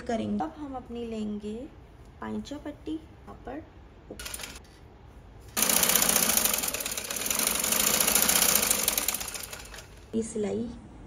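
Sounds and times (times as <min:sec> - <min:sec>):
sewing machine running: 0:04.2 - 0:04.6, 0:05.6 - 0:10.1.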